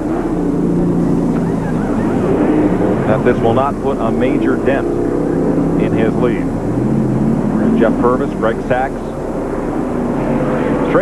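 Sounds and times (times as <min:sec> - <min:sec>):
car engines running at low speed: 0:00.0 - 0:11.0.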